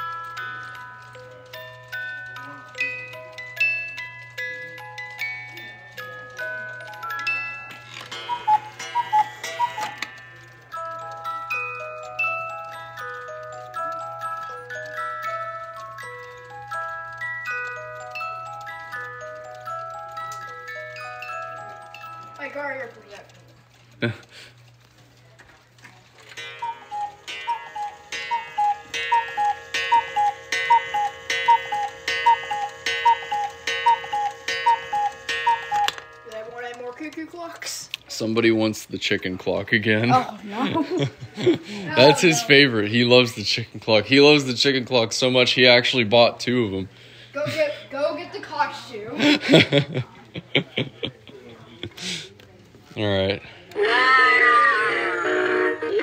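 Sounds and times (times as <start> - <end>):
clock click: 0.0 - 24.0, 24.6 - 38.1
music box melody: 0.0 - 24.0, 26.2 - 46.2
clock tinkling pattern: 0.0 - 24.8, 26.3 - 46.3.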